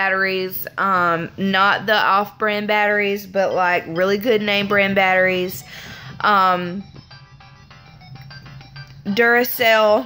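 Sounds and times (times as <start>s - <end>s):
tinny electronic game beeping tune: 3.9s - 9.8s.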